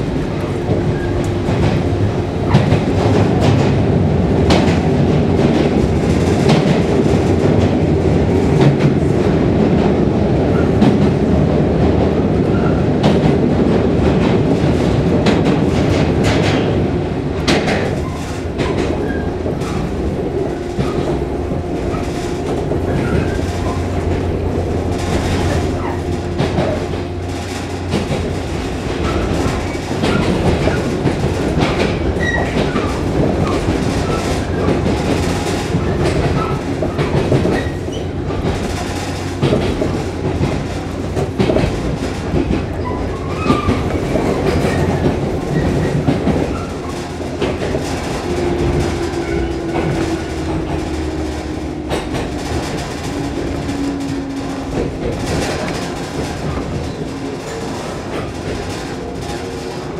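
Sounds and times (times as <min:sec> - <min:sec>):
train wheels clattering over rail joints: 0:00.0 - 0:59.9.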